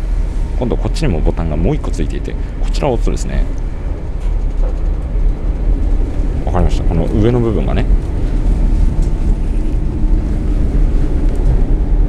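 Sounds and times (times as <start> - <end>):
faint steady hum: 0.0 - 12.0
train rumbling: 0.0 - 12.0.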